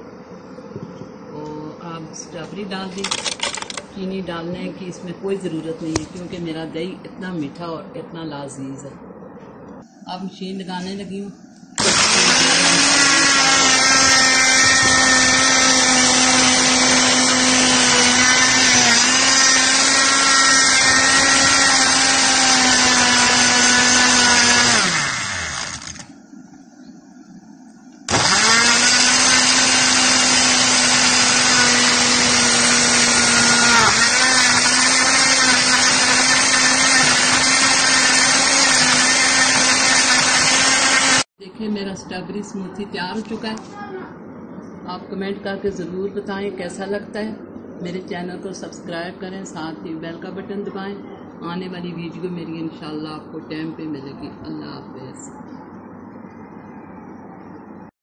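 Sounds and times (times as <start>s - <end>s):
blender motor running: 11.8s - 26.1s, 28.1s - 41.3s.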